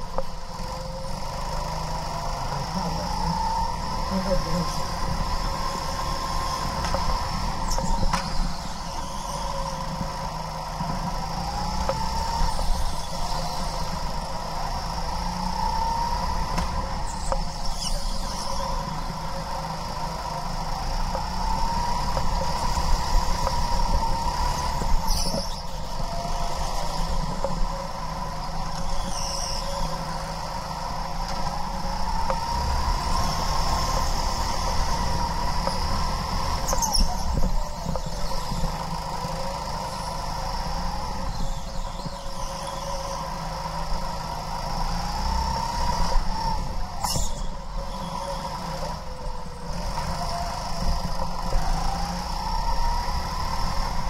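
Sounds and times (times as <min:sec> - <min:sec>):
go-kart motor running: 0:00.0 - 0:54.0.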